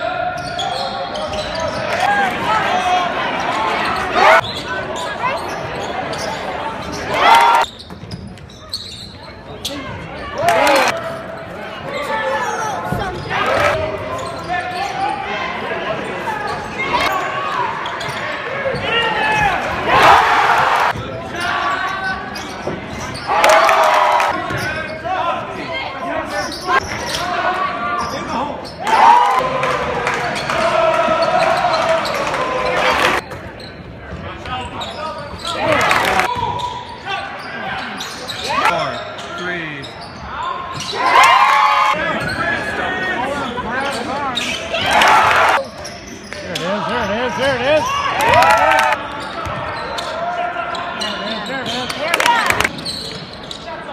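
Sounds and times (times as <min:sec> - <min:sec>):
spectators talking: 0:00.0 - 0:53.9
crowd cheering bursts: 0:23.3 - 0:24.4, 0:47.9 - 0:49.0.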